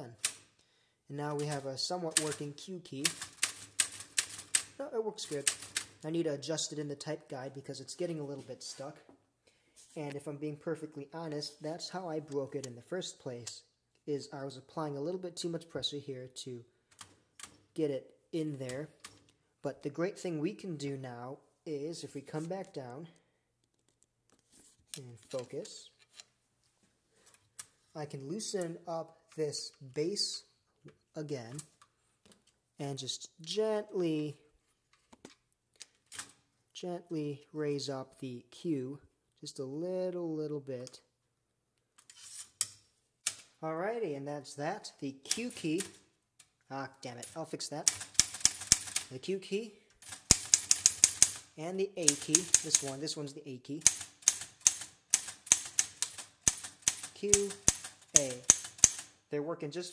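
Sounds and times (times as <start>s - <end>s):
typewriter type bars clacking: 1.4s - 6.0s, 47.8s - 49.1s, 50.0s - 53.0s, 53.8s - 59.2s.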